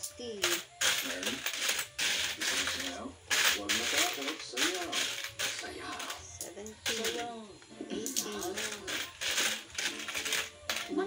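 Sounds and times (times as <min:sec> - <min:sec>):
coins clinking and jingling: 0:00.0 - 0:07.3, 0:08.1 - 0:11.0.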